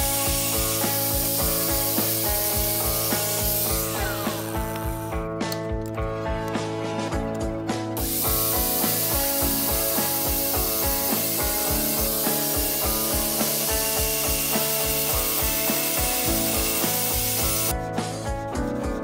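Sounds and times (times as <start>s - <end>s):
angle grinder sanding wood: 0.0s - 5.0s, 8.0s - 17.7s
music with steady beat: 0.0s - 19.0s.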